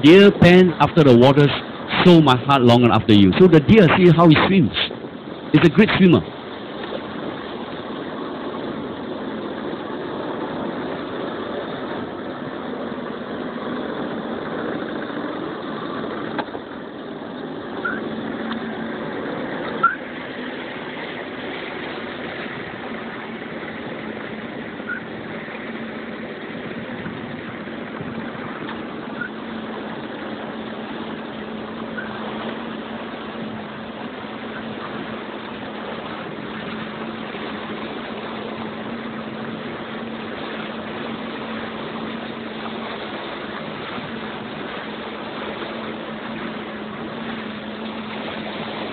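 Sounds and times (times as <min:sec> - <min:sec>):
boat motor running: 0:00.0 - 0:48.9
low steady hum: 0:00.0 - 0:48.9
faint short chirps: 0:17.8 - 0:18.1.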